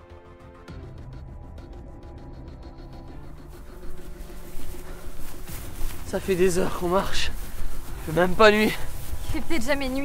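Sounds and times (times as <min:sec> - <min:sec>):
music of steady held tones: 0:00.0 - 0:10.0
rustling hiss: 0:03.2 - 0:10.0.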